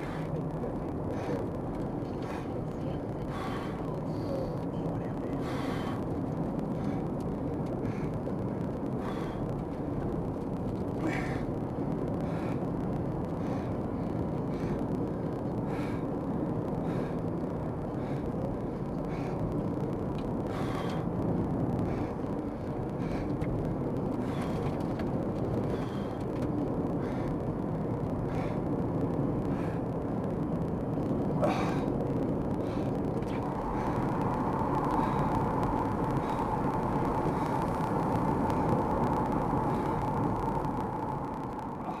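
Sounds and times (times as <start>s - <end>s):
heavy storm wind: 0.0s - 42.0s
steady high whine: 0.0s - 42.0s
vehicle road noise: 0.0s - 42.0s.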